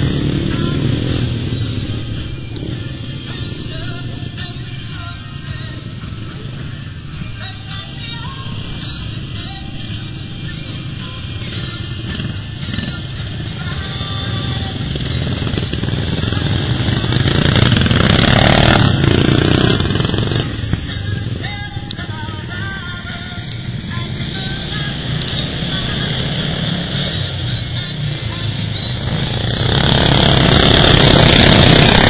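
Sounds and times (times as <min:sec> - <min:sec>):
lawnmower engines racing: 0:00.0 - 0:03.7, 0:10.5 - 0:20.8, 0:23.8 - 0:32.0
music playing: 0:00.0 - 0:32.0.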